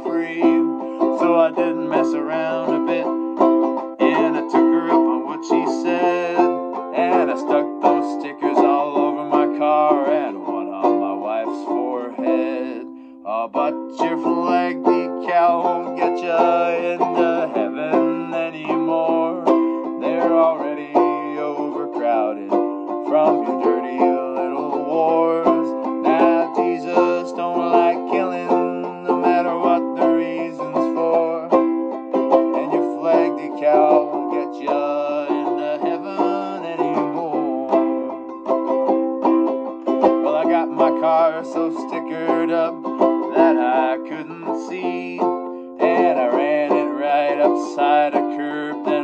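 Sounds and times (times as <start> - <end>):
banjo ukulele strumming chords: 0.0 - 49.0.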